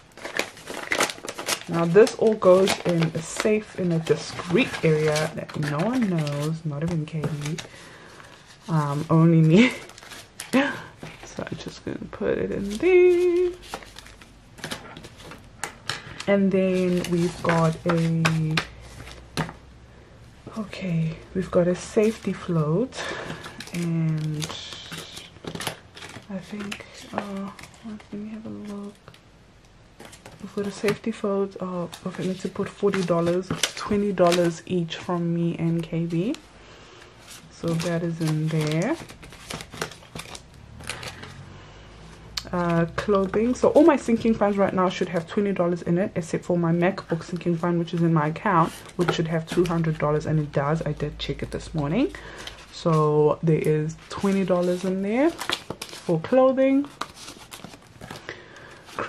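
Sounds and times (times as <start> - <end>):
paper envelope rustling and tapping: 0.0 - 11.8, 12.6 - 19.6, 23.0 - 29.2, 31.9 - 36.4, 37.3 - 41.3, 46.8 - 50.6, 53.6 - 59.0.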